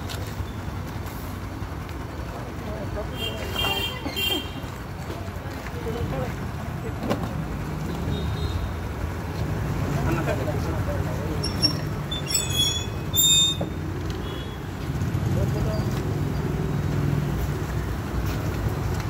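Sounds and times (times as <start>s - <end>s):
road traffic rumble: 0.0s - 19.0s.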